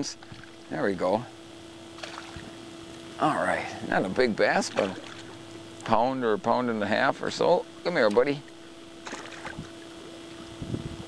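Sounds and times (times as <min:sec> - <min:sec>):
steady low hum: 0:00.0 - 0:11.0
faint water splashing: 0:04.6 - 0:05.4.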